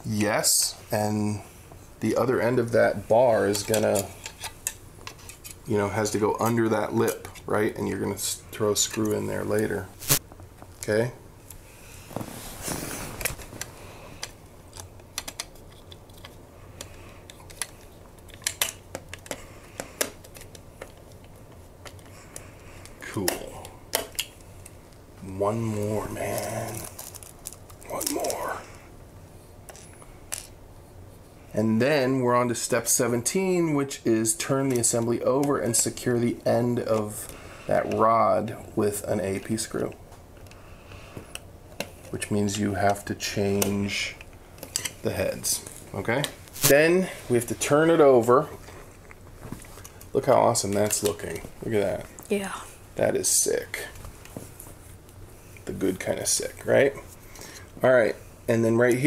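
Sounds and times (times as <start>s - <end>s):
plastic parts being handled: 12.1s - 24.8s, 25.8s - 28.4s.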